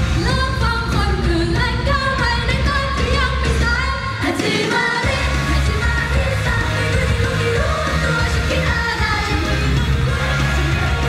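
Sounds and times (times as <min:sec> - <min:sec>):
pop band backing track: 0:00.0 - 0:11.0
woman singing into microphone: 0:00.1 - 0:10.6.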